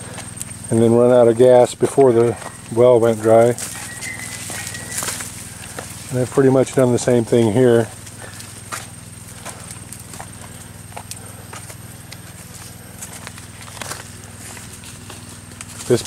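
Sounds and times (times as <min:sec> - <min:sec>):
footsteps on dirt path: 0:00.0 - 0:16.0
steady low hum: 0:00.0 - 0:16.0.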